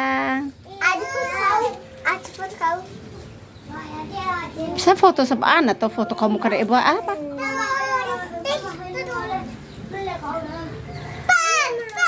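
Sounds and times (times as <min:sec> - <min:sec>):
children chattering: 0:00.0 - 0:12.0
child calling out: 0:00.8 - 0:02.2, 0:11.3 - 0:12.0.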